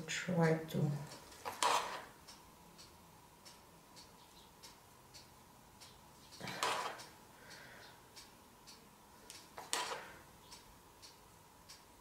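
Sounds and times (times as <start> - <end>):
clock ticking: 0.1 - 12.0.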